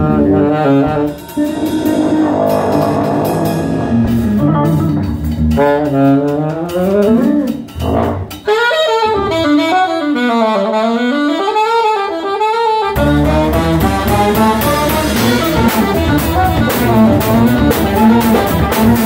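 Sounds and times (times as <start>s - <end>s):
bass: 0.0s - 11.4s, 12.9s - 19.0s
drums: 0.0s - 11.8s, 12.8s - 19.0s
alto saxophone solo: 0.0s - 19.0s.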